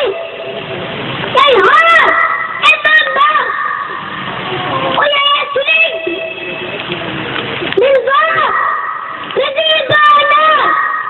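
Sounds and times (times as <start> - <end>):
background noise: 0.0 - 11.0
boy speaking through loudspeaker: 1.3 - 4.0, 5.0 - 6.2, 7.8 - 11.0.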